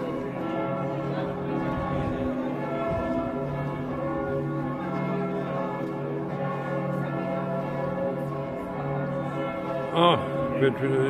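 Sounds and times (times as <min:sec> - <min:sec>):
church bells pealing: 0:00.0 - 0:11.0.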